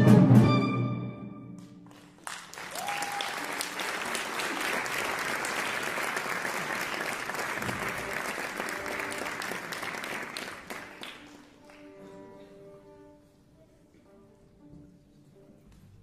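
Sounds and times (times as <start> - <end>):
audience applauding: 1.8 - 12.1.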